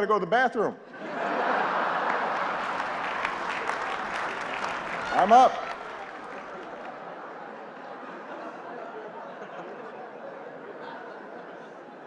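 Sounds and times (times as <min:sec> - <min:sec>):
audience laughing: 0:00.9 - 0:12.0
audience applauding: 0:01.4 - 0:08.3.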